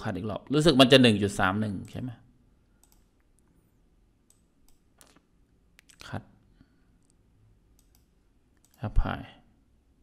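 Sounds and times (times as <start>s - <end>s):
computer mouse clicks: 2.8s - 3.6s, 4.2s - 6.0s, 7.0s - 8.9s.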